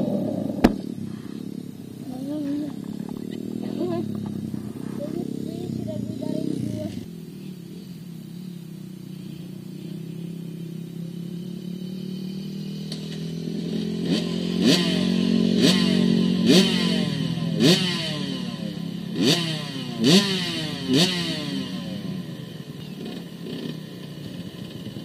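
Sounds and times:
engine revving: 0.0 - 25.0
motorcycle engine idling: 0.0 - 25.0.

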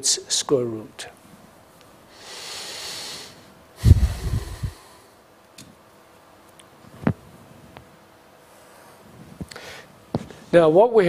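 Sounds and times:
man breathing: 2.1 - 5.2, 8.6 - 10.0
low throat sound: 3.8 - 4.9.

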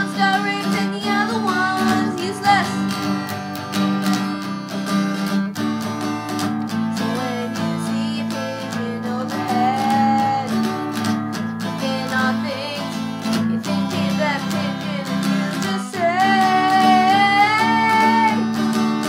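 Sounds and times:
person singing: 0.0 - 4.3, 6.9 - 10.9, 11.6 - 18.8
strummed acoustic guitar: 0.0 - 19.0.

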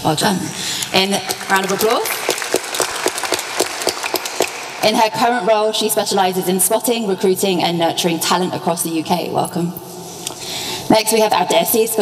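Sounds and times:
nearby hands clapping fast: 0.5 - 4.8
audience applauding: 0.9 - 4.8.

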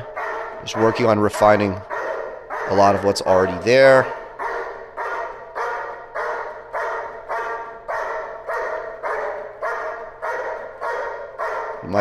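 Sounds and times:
dog barking with echo: 0.0 - 12.0.

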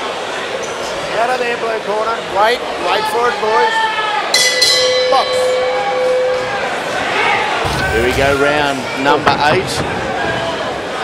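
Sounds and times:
arena crowd: 0.0 - 11.0
boxing ring bell: 4.4 - 6.7.

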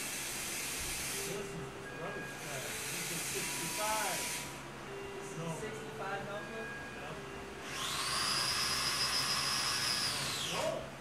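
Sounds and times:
electric motor whining: 0.0 - 11.0.

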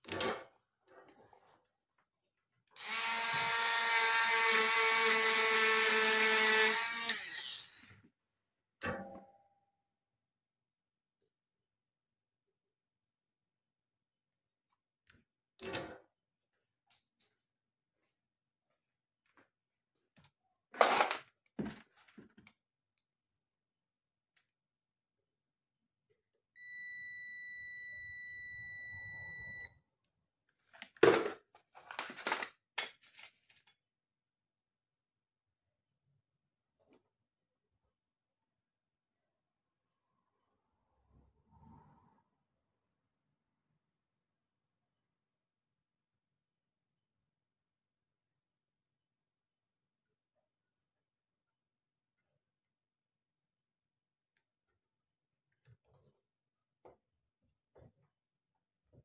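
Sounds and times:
multimeter high-pitched beep: 26.6 - 29.7.

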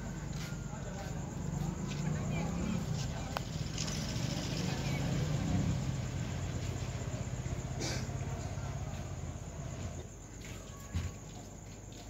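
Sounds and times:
indistinct voices: 0.0 - 10.0
background bustle: 0.0 - 12.0.

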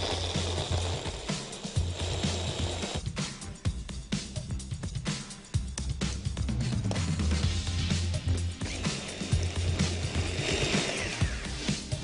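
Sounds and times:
electric blender running: 0.0 - 3.0, 8.6 - 11.8
background music: 0.0 - 12.0.

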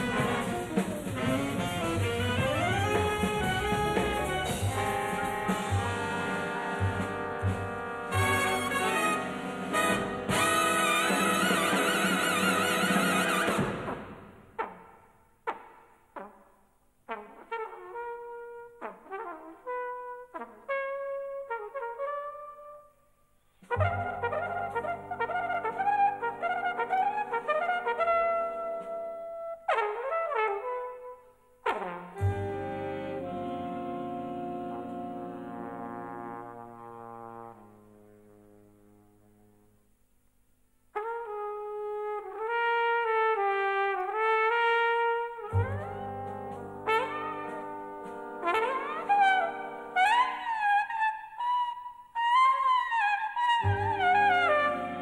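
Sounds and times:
big band chord: 0.0 - 14.0, 32.2 - 37.7
jazz flugelhorn solo: 0.0 - 14.0, 17.1 - 23.0, 23.6 - 39.7, 40.9 - 55.0
deeper band instruments: 0.0 - 16.4, 23.6 - 31.0, 31.6 - 39.6, 41.0 - 50.7, 53.6 - 55.0.

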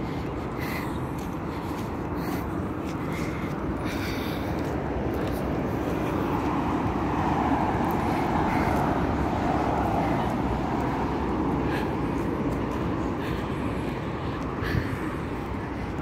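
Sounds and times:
passing cars road noise: 0.0 - 16.0.

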